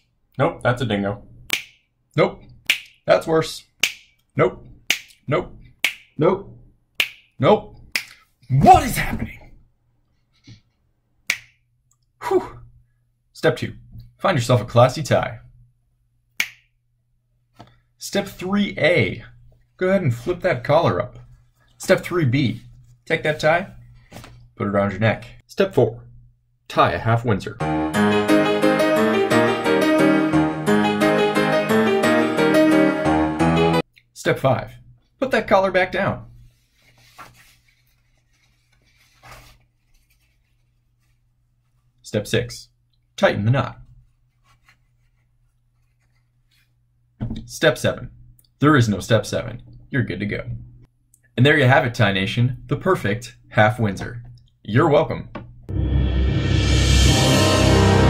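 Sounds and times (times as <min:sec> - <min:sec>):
finger snap: 0:01.5 - 0:01.8, 0:02.7 - 0:03.0, 0:03.8 - 0:04.2, 0:04.9 - 0:05.2, 0:05.8 - 0:06.1, 0:07.0 - 0:07.3, 0:07.9 - 0:08.3, 0:11.3 - 0:11.6, 0:16.4 - 0:16.7
necktie rustling: 0:36.4 - 0:42.0, 0:44.0 - 0:46.8.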